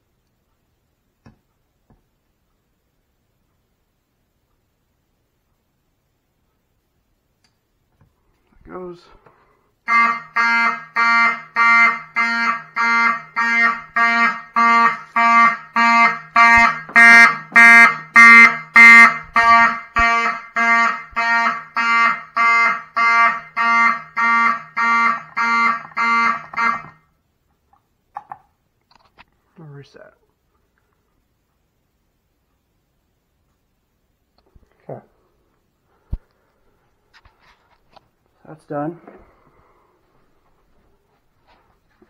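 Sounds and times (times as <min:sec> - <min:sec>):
fire alarm horn pulsing: 0:09.8 - 0:27.0.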